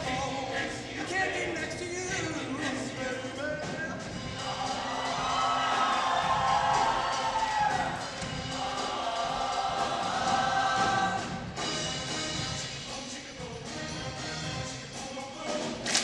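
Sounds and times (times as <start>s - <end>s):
choir singing in harmony: 0.0s - 3.4s, 4.1s - 15.8s.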